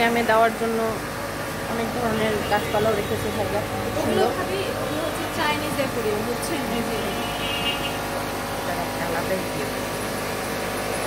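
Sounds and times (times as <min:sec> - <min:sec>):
machinery hum: 0:00.0 - 0:11.0.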